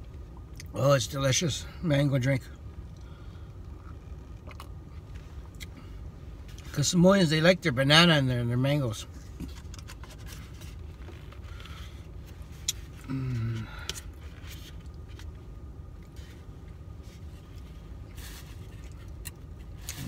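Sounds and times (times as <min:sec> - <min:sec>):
low car cabin rumble: 0:00.0 - 0:20.0.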